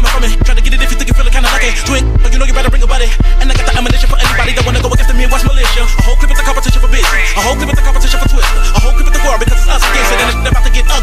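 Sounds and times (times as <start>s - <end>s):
rapping over a beat: 0.0s - 11.0s.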